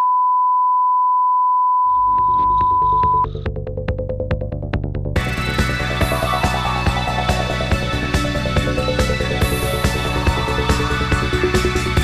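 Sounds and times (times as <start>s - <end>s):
electronic test tone: 0.0s - 3.3s.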